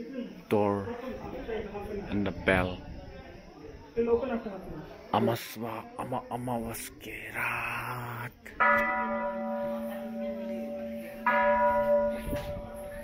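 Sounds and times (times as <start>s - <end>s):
temple bell ringing: 8.6s - 13.0s.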